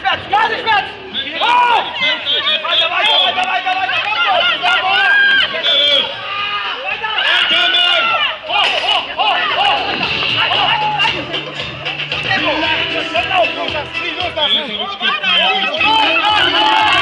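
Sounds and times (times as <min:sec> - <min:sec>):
crowd noise: 0:00.0 - 0:17.0
people shouting and talking: 0:00.0 - 0:17.0.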